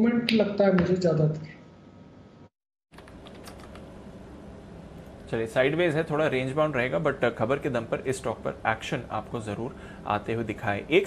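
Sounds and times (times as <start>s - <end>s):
faint room noise: 1.4s - 11.0s.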